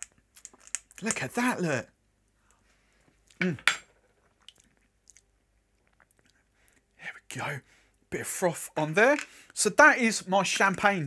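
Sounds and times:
man saying mm: 0:03.4 - 0:03.8.

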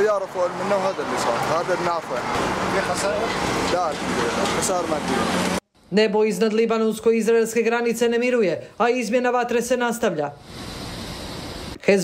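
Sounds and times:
man talking: 0:00.0 - 0:05.1
street noise: 0:00.0 - 0:05.9, 0:07.1 - 0:11.8.

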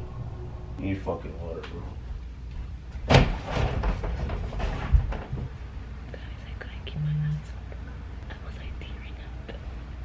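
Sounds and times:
faint whispering: 0:06.1 - 0:09.8.

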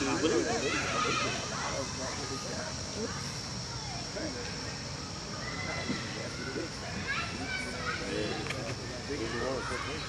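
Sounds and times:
distant children playing and calling: 0:00.0 - 0:10.0.

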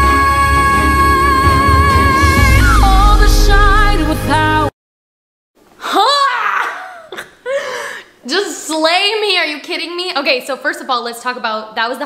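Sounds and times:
woman whooping: 0:05.8 - 0:07.2
woman laughing: 0:05.8 - 0:08.0.

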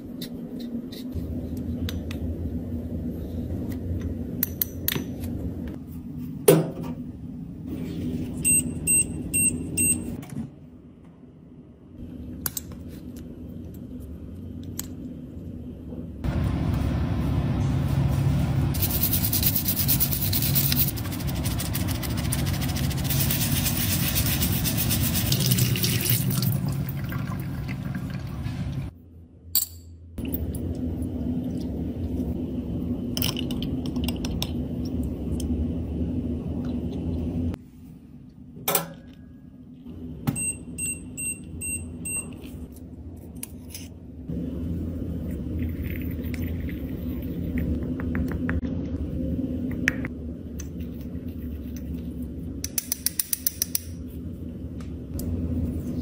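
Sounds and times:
brush scrubbing plastic: 0:18.8 - 0:25.3.

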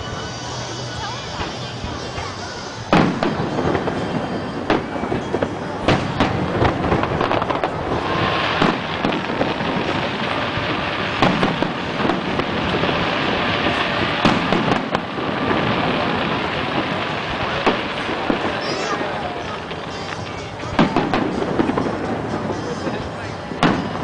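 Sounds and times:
continuous hiss: 0:00.0 - 0:24.0
fireworks bursting with sharp bangs: 0:00.0 - 0:24.0.

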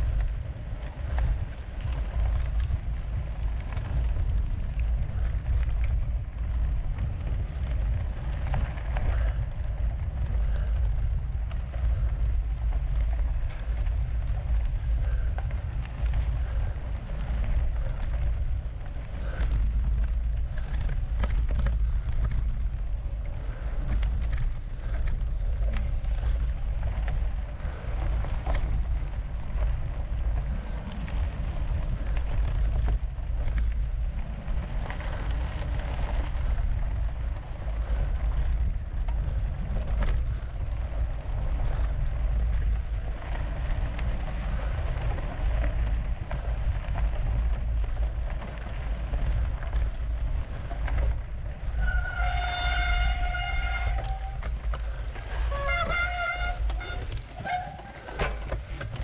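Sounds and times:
clicks and knocks from bike: 0:00.0 - 0:59.0
mountain bike rolling on sandy trail: 0:00.0 - 0:59.0
wind rumble on microphone: 0:00.0 - 0:59.0.

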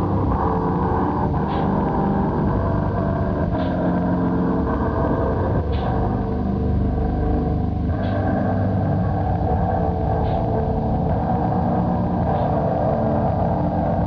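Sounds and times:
low drone soundtrack: 0:00.0 - 0:14.0.

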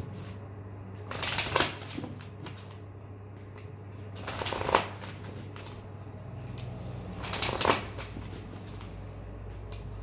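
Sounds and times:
cards being shuffled: 0:00.0 - 0:10.0
cards snapping: 0:01.1 - 0:02.7, 0:03.6 - 0:05.8, 0:06.5 - 0:09.0.

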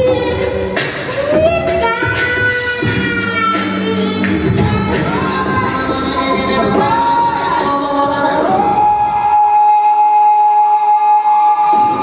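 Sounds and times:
vocal bass and beat: 0:00.0 - 0:09.6
a cappella group singing: 0:03.8 - 0:12.0.

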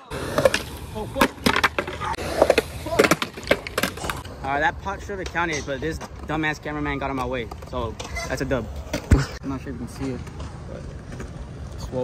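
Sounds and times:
skateboard rolling on concrete: 0:00.0 - 0:12.0
skateboard clacking: 0:00.1 - 0:04.3.

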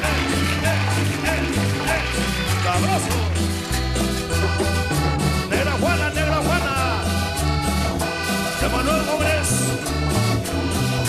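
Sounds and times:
accordion: 0:00.0 - 0:11.0
bass line: 0:00.0 - 0:11.0
congas: 0:00.0 - 0:11.0.

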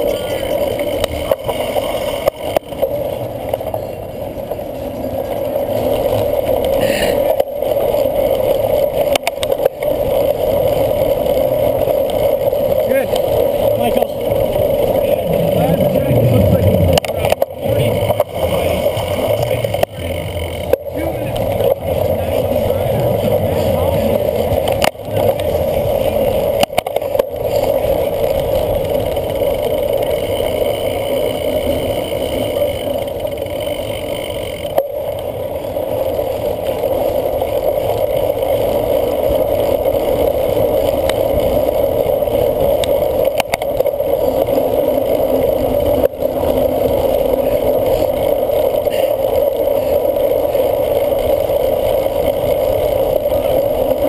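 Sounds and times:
bike rattle: 0:00.0 - 0:54.0
bike tyre rumble: 0:00.0 - 0:54.0
wind rushing: 0:14.3 - 0:19.4.

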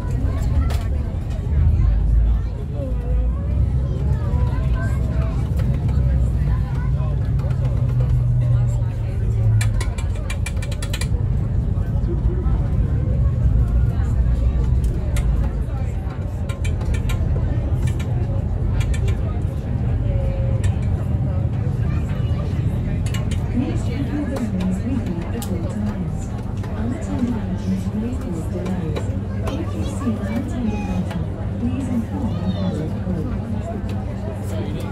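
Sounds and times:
boat engine drone: 0:00.0 - 0:34.9
indistinct talking: 0:00.0 - 0:34.9.

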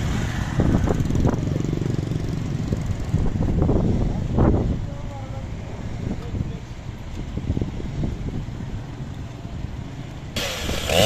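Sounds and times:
street traffic rumble: 0:00.0 - 0:11.0
chainsaw revving: 0:10.4 - 0:11.0.

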